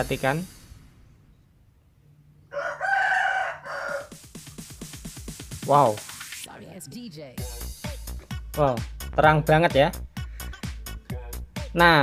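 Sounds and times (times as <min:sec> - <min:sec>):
rooster crowing: 0:02.4 - 0:04.3.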